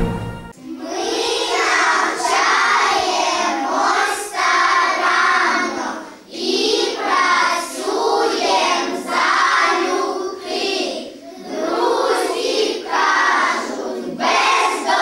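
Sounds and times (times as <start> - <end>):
children singing in unison: 0.0 - 15.0.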